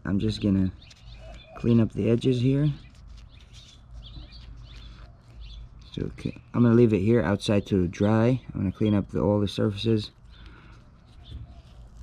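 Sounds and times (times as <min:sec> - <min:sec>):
birds chirping faintly: 0:00.0 - 0:12.0
low steady outdoor rumble: 0:00.0 - 0:12.0.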